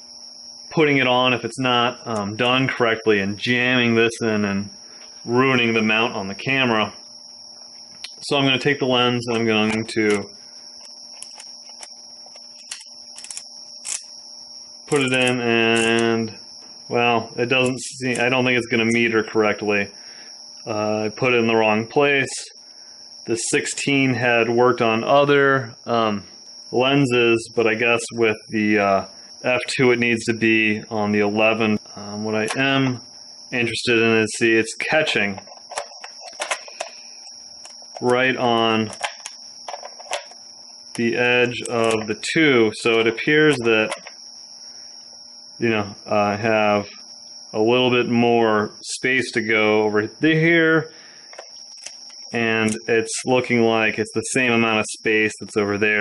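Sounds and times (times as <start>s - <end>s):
electrical hum with high whine: 0.0s - 56.0s
camera lens clicking and scraping: 38.9s - 40.4s.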